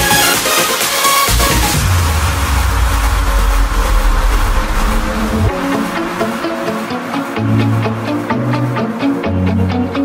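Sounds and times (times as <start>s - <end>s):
deep bass note: 1.3s - 6.9s.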